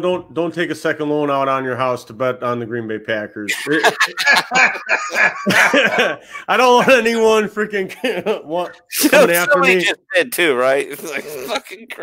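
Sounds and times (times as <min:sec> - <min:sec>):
people laughing hard: 0:03.5 - 0:07.1.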